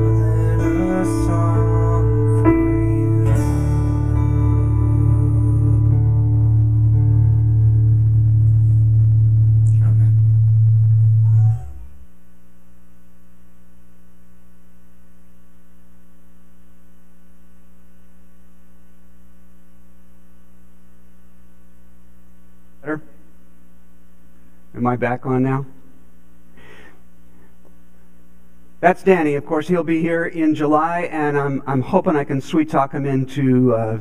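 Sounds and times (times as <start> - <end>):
electrical mains hum: 0.0 - 34.0.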